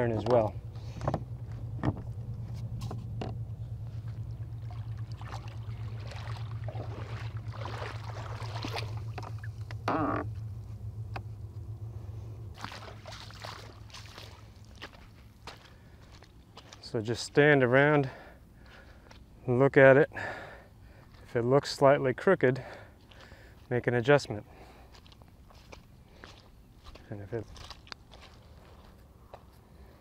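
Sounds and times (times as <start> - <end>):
steady low hum: 0.0 - 30.0
shallow water sloshing and splashing: 3.8 - 10.4, 12.5 - 16.8.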